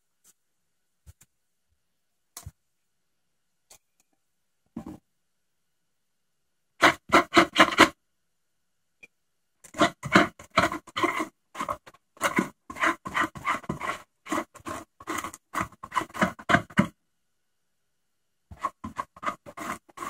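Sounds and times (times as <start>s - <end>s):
glue brush scrubbing on foam: 9.8s - 16.9s, 18.5s - 20.0s.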